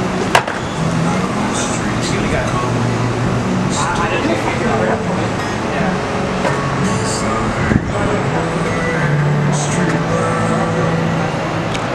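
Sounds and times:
indistinct voices: 0.0s - 11.9s
low engine hum: 0.0s - 11.9s
road traffic: 0.0s - 11.9s
sharp knock: 0.3s - 0.6s.

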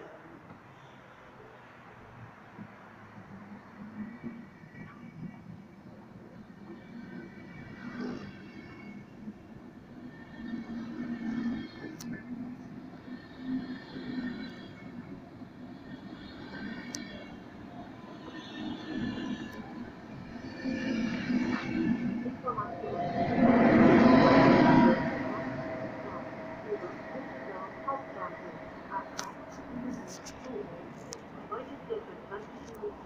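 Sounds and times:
train wheels rumbling on rails: 2.6s - 33.0s
faint high whining tones: 3.6s - 33.0s
locomotive humming note: 8.4s - 33.0s.

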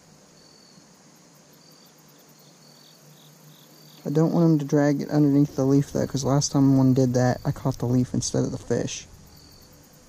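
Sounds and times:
cricket chirping: 0.0s - 10.0s
low steady hiss: 0.0s - 10.0s.

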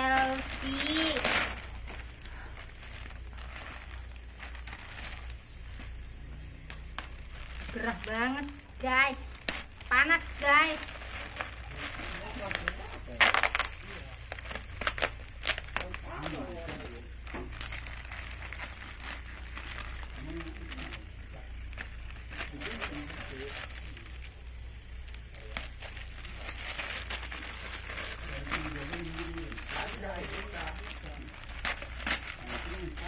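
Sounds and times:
plastic bag crinkling: 0.0s - 33.0s.

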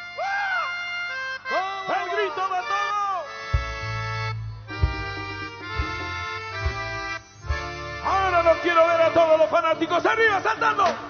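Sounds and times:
live latin band music: 0.0s - 11.0s
man calling out: 1.5s - 3.4s, 8.0s - 11.0s.

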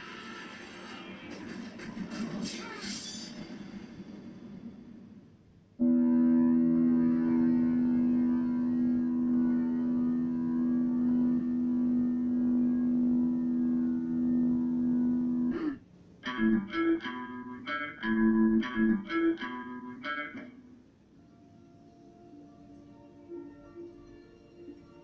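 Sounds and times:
sustained musical chord: 5.8s - 25.0s.

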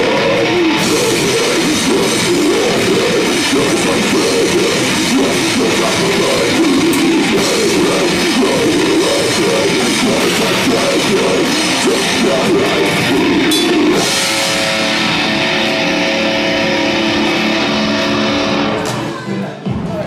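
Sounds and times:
drums: 0.0s - 20.0s
loud distorted guitars: 0.0s - 20.0s.

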